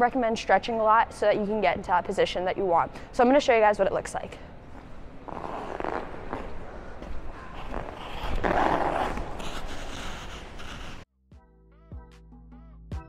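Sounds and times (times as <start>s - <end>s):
skate blades scraping on ice: 5.3s - 11.0s.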